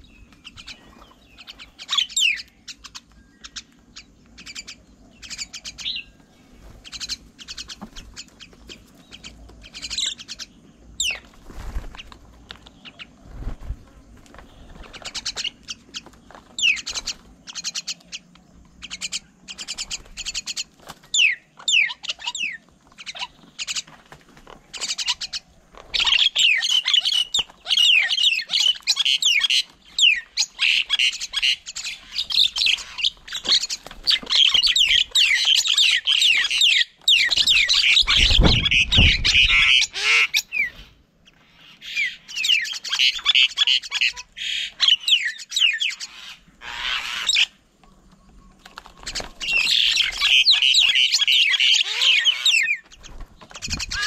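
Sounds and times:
birds chirping and squawking: 0.0s - 54.0s.

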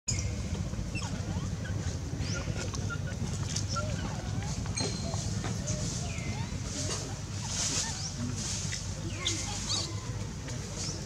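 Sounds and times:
steady low rumble: 0.1s - 11.0s.

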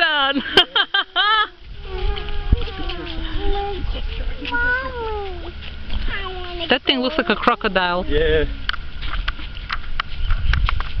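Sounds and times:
wind rumble on microphone: 1.6s - 4.5s, 8.0s - 11.0s.

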